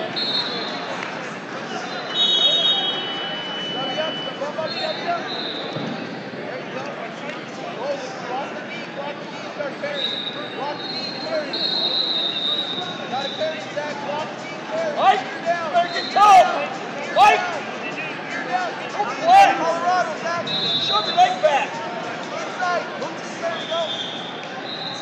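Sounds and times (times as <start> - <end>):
babble of voices: 0.0 - 25.0
referee whistle blasts: 0.1 - 0.8, 2.0 - 5.8, 10.0 - 13.5, 15.8 - 16.5, 20.4 - 21.4, 23.5 - 25.0.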